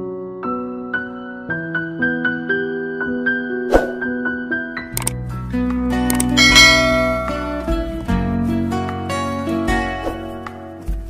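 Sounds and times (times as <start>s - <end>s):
background music: 0.0s - 11.0s
sharp cursor click: 6.1s - 7.6s
bell-like ding: 6.4s - 7.9s.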